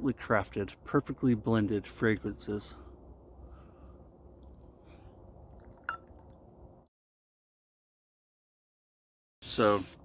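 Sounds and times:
low outdoor rumble: 0.0s - 6.9s.

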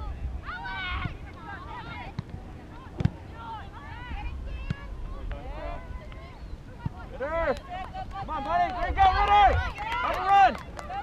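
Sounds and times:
wind rumble on microphone: 0.0s - 2.8s, 3.5s - 11.0s
voices calling and shouting: 0.0s - 11.0s.

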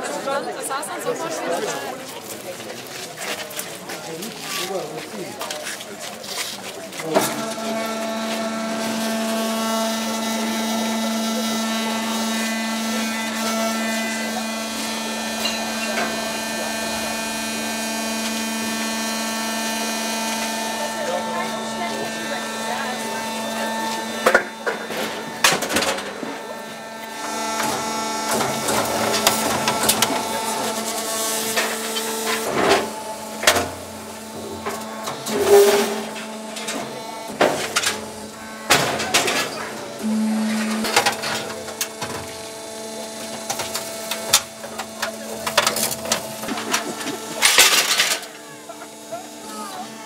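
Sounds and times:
faint crowd voices: 0.0s - 50.0s
motor hum: 7.2s - 50.0s.

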